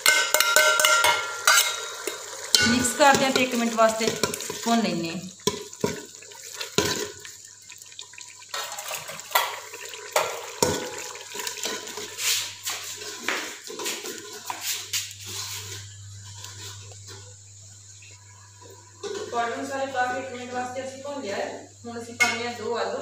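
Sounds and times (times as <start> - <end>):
ladle scraping metal pot: 0.0 - 7.3, 8.5 - 17.2
masala sizzling and squelching: 0.0 - 22.6.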